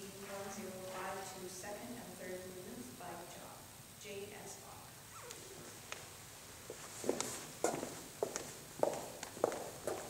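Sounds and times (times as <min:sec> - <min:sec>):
footsteps on hard floor: 0:06.7 - 0:10.0.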